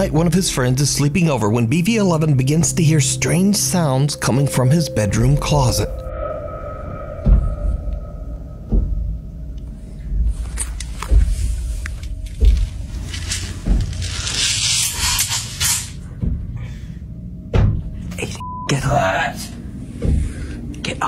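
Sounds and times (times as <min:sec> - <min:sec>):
dull knocks and thumps: 0:08.6 - 0:09.3, 0:16.1 - 0:16.6, 0:17.4 - 0:18.1, 0:20.0 - 0:20.5.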